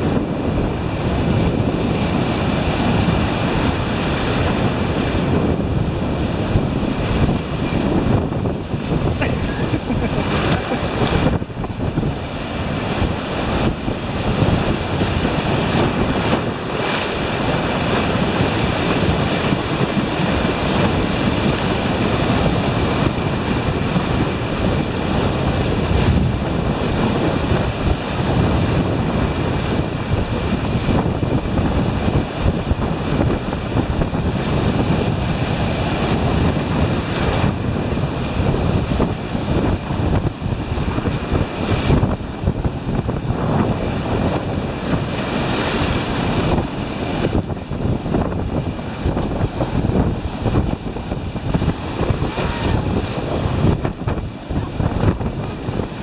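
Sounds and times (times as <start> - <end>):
ocean surf breaking: 0.0 - 56.0
wind buffeting microphone: 0.0 - 56.0.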